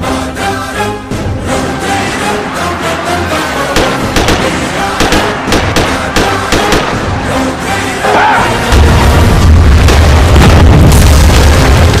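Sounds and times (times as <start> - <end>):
music: 0.0 - 12.0
explosion boom with low rumble: 8.7 - 12.0.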